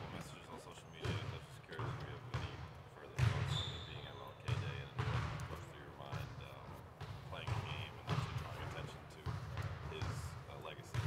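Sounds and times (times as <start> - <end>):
basketballs bouncing on gym floor: 1.0 - 11.0.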